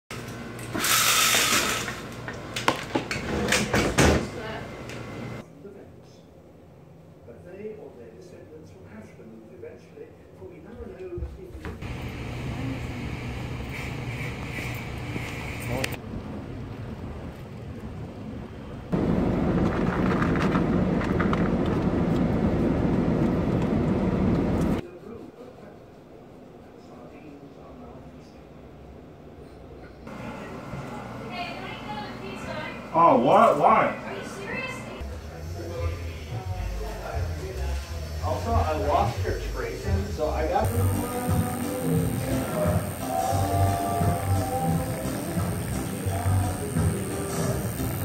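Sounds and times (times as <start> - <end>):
street traffic: 11.8 - 24.8.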